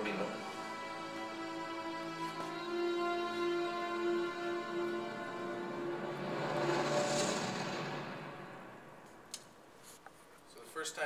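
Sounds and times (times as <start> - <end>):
film soundtrack rushing swell: 0.0 - 9.4.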